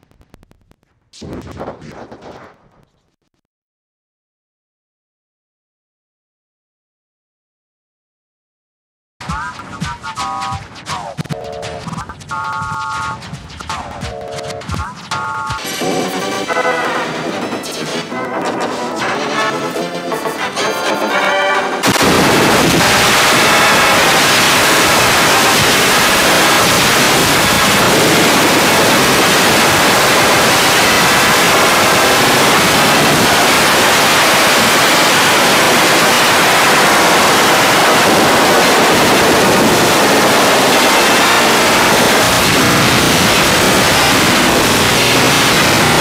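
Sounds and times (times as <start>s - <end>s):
loud harsh crackling static: 0.0s - 3.4s, 9.2s - 46.0s
cartoon music: 9.2s - 21.8s.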